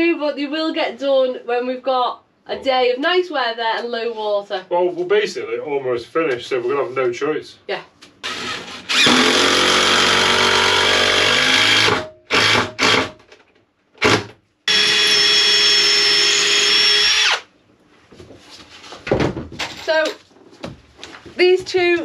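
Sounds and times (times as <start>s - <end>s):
drill driving screws into wood: 8.2s - 13.2s, 14.0s - 17.5s.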